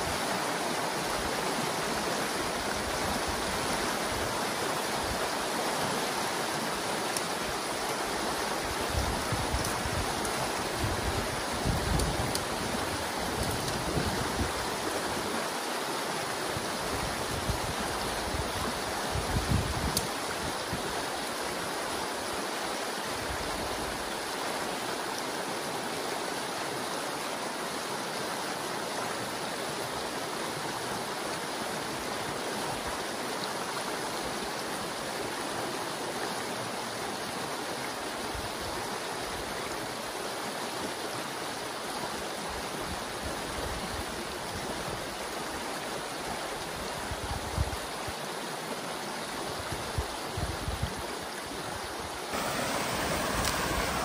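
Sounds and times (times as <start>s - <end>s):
creek water rushing: 0.0s - 54.0s.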